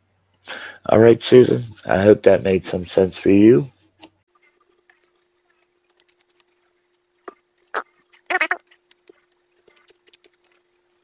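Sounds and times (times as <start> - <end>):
faint steady hum: 0.0 - 11.0
scratchy handling noises: 3.8 - 11.0.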